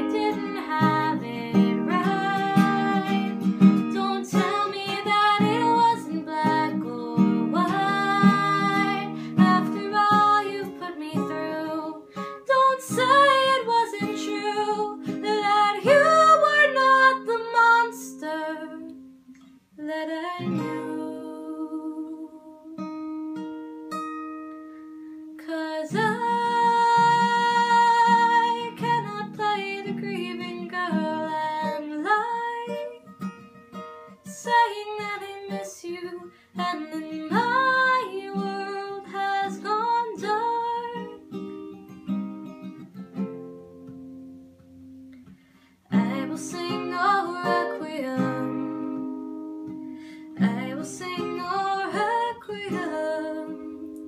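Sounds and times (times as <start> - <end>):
woman singing: 0.0 - 22.8, 25.4 - 33.3, 34.2 - 41.4, 45.9 - 54.0
acoustic guitar: 0.0 - 54.0.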